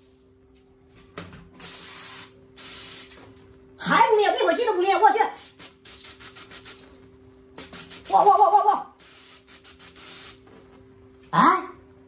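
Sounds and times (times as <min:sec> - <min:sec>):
fire extinguisher hissing bursts: 0:01.6 - 0:03.2, 0:07.6 - 0:08.1, 0:09.0 - 0:10.4.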